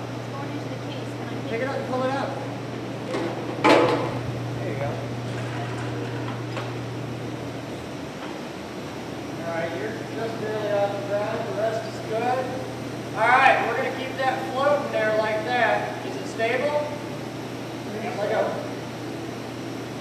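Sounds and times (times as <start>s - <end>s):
forklift humming: 0.0s - 20.0s.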